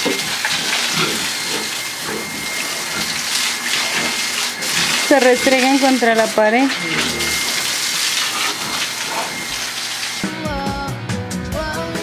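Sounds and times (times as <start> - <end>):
water running: 0.0 - 10.4.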